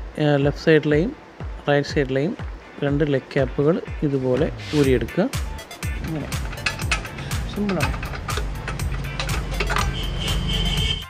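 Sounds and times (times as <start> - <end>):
background music: 0.0 - 11.0
metallic clicking and ticking: 5.8 - 11.0.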